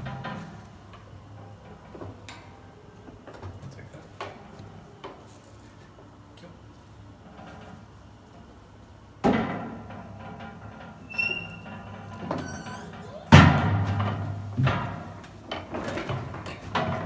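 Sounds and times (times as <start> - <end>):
short high squeaks: 11.0 - 13.1.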